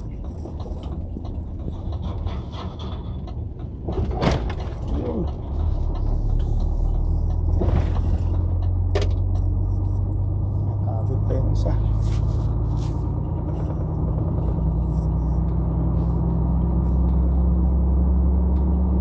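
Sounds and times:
truck engine drone inside cab: 0:00.0 - 0:19.0.

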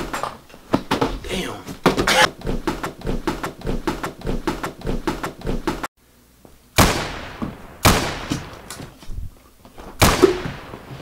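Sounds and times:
quick repeated sharp sounds: 0:02.1 - 0:05.9.

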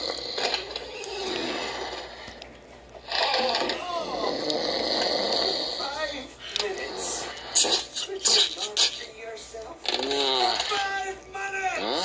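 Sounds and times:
cartoon snoring: 0:00.0 - 0:02.4, 0:03.0 - 0:05.9, 0:06.8 - 0:08.4.

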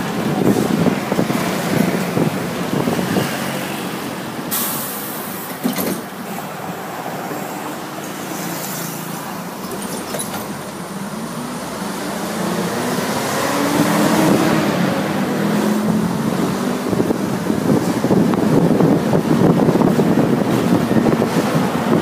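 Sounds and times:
bus engine running: 0:00.0 - 0:22.0
road and traffic noise: 0:00.0 - 0:22.0.

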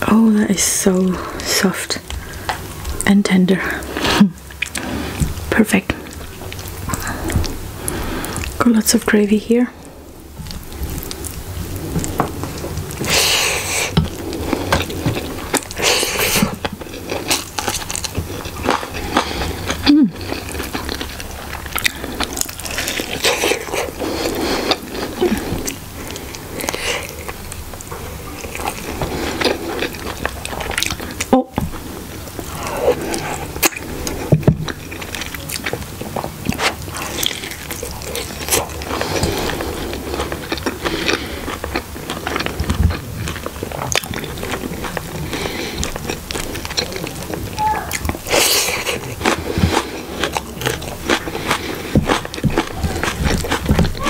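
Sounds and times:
chewing and wet mouth sounds: 0:00.8 - 0:54.0.

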